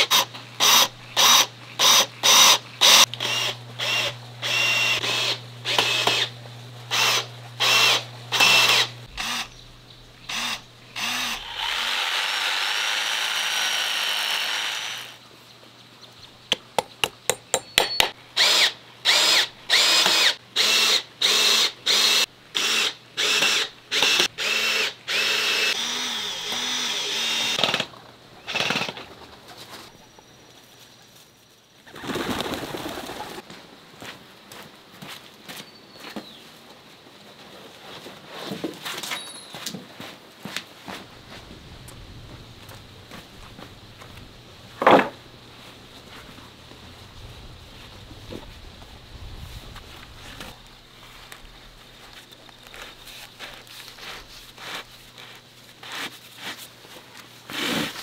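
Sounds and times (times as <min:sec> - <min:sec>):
power drill drilling into wood: 0:00.0 - 0:06.3, 0:06.9 - 0:09.5, 0:10.3 - 0:15.2, 0:18.4 - 0:27.8.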